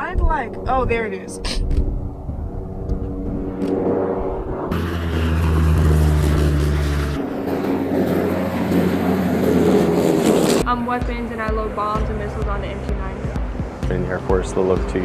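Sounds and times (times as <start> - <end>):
propeller aircraft droning overhead: 0.0 - 15.0.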